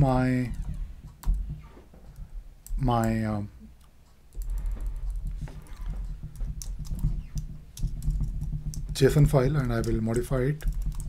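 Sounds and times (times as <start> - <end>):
low steady hum: 0.0 - 11.0
keyboard typing: 3.8 - 11.0.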